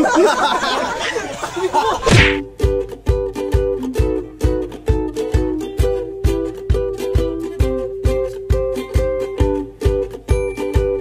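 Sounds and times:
whoosh and hit transition effect: 2.0 - 2.5.

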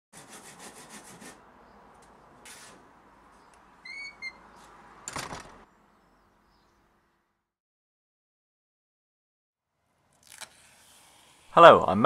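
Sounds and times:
handsaw cutting wood: 0.2 - 1.4.

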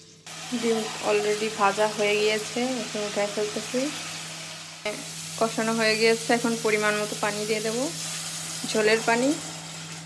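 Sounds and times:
water hissing in hot oil: 0.0 - 10.0
woman's voice: 0.5 - 4.0, 4.9 - 8.0, 8.6 - 9.4.

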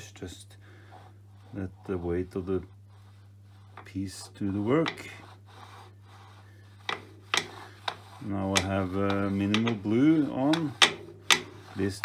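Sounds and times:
metal rubbing on metal: 0.8 - 12.0.

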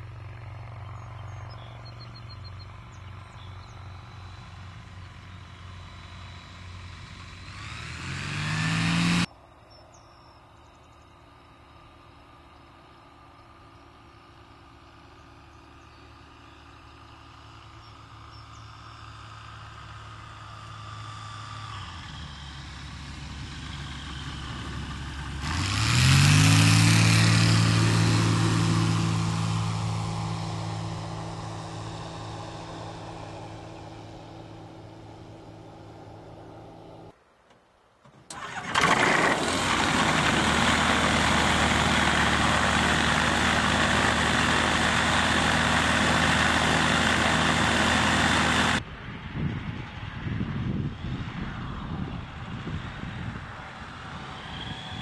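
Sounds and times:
aircraft engine and propeller: 0.0 - 37.2, 38.2 - 55.0.

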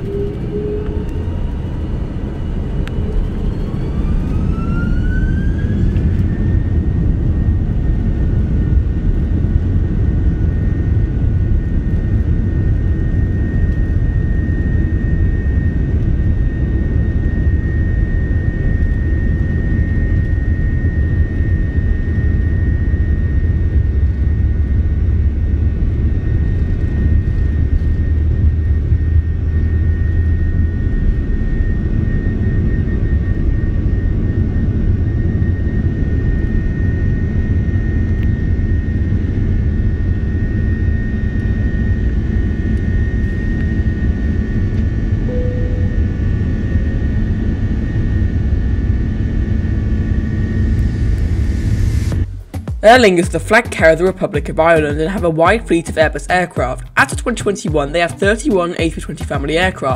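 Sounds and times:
jet engines roaring with high whine: 0.0 - 59.9.

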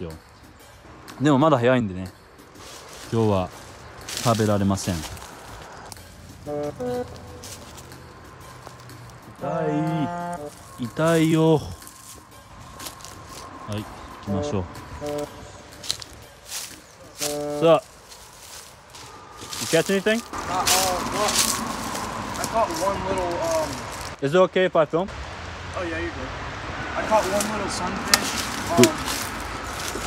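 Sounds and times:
men calling back and forth: 0.0 - 24.8, 25.7 - 30.0
brushing of dry grass: 2.6 - 7.9, 10.4 - 13.6, 15.0 - 24.2, 28.2 - 30.0
footsteps: 2.6 - 9.4, 10.3 - 24.2, 27.2 - 30.0.

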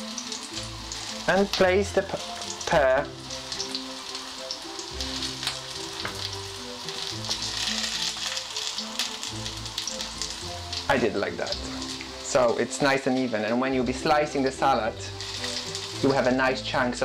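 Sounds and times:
vegetables sizzling in a frying pan: 0.0 - 17.0.

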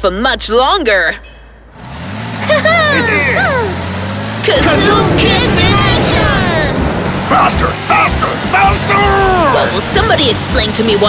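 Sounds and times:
cartoon car engine humming: 1.6 - 11.0
wordless yelling voices: 2.6 - 11.0
loud rushing whoosh: 4.5 - 8.9.

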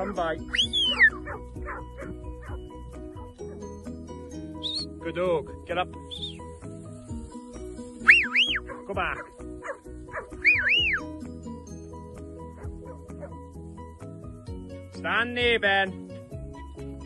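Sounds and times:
background music: 0.0 - 17.0
shepherd's whistle commands: 0.5 - 1.4, 4.6 - 4.9, 6.1 - 6.4, 8.0 - 8.8, 10.4 - 11.0.

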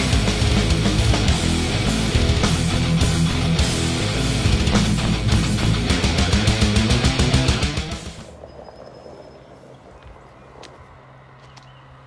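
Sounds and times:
rock music: 0.0 - 8.3.

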